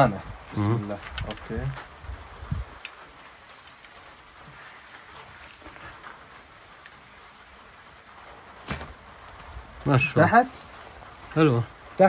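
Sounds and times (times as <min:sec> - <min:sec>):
light rain patter: 0:00.0 - 0:12.0.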